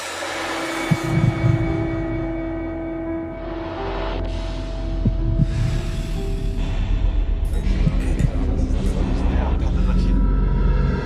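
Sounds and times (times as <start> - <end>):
low drone: 0.0 - 11.0
deep low thuds: 4.9 - 9.6.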